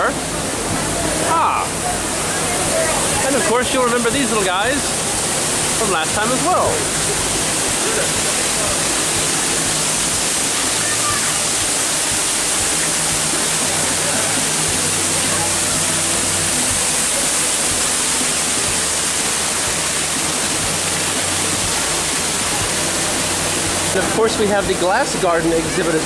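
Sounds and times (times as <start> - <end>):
waterfall rushing: 0.0 - 26.0.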